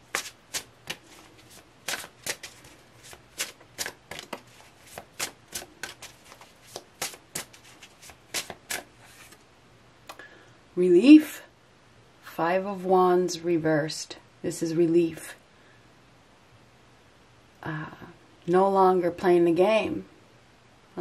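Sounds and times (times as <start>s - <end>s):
cards being shuffled: 0.0s - 9.4s.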